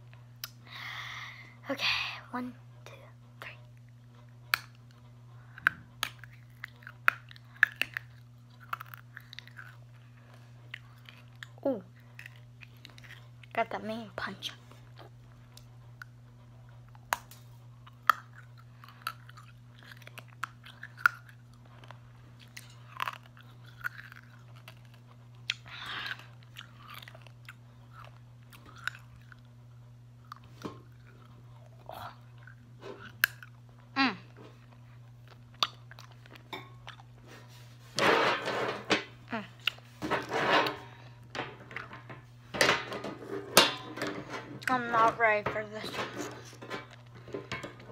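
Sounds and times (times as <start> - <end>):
candy cracking between teeth: 5.6 - 13.6, 17.0 - 29.5, 30.2 - 33.7.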